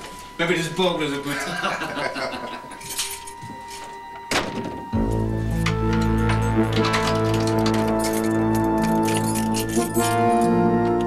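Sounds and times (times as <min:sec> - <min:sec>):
tense background music: 0:00.0 - 0:11.0
keys jingling in a door lock: 0:02.7 - 0:04.0, 0:05.1 - 0:11.0.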